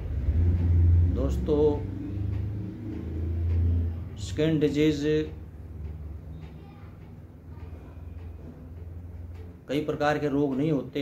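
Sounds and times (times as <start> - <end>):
steady low rumble: 0.0 - 6.3.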